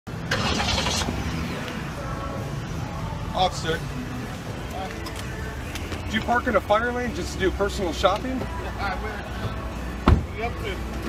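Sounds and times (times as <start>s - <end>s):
car engine humming: 0.1s - 11.0s.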